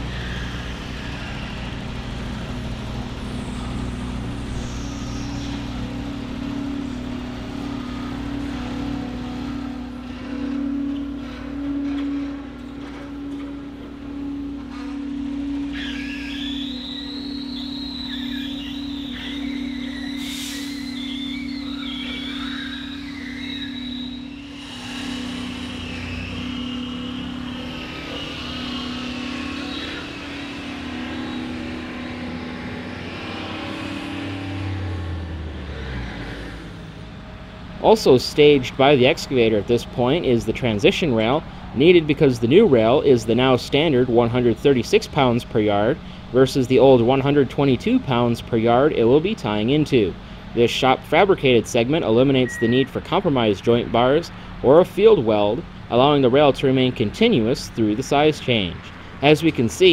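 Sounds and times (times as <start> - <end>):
excavator diesel engine running: 0.0 - 59.9
high wavering squeal: 0.0 - 59.9.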